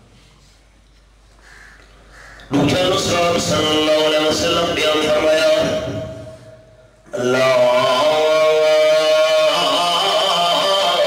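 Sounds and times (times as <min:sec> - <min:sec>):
man chanting into a microphone: 0:02.5 - 0:11.0.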